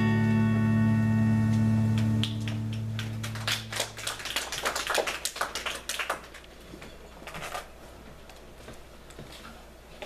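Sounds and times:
guitar chord: 0.0s - 3.4s
congregation applauding: 1.9s - 6.4s.

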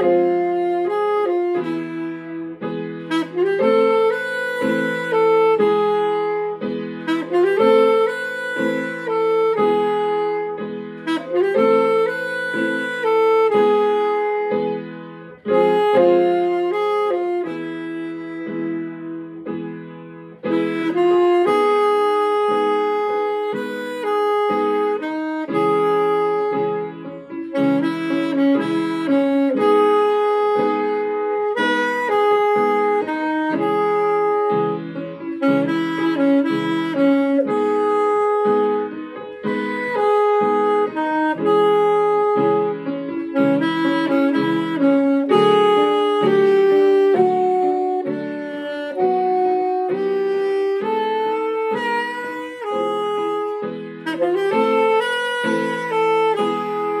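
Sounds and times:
alto saxophone slow melody: 0.0s - 57.0s
piano chords: 0.0s - 57.0s.

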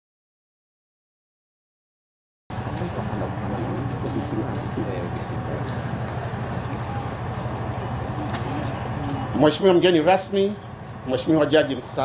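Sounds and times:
indistinct voices murmuring: 2.5s - 12.0s
steady low hum: 2.5s - 12.0s.

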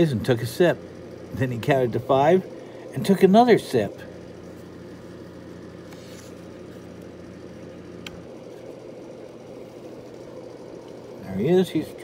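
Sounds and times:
low mechanical hum: 0.0s - 12.0s
book page rustling: 5.8s - 6.5s.

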